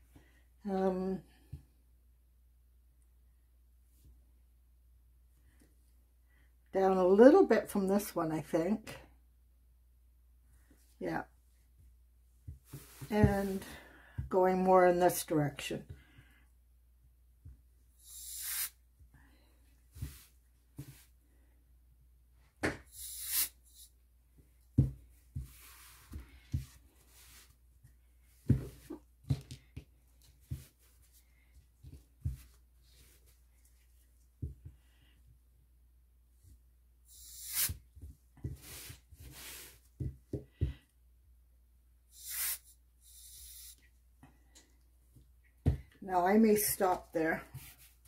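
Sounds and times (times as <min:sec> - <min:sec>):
canned air hissing: 0:18.0 - 0:18.8, 0:22.9 - 0:23.8, 0:37.1 - 0:37.8, 0:42.1 - 0:43.8.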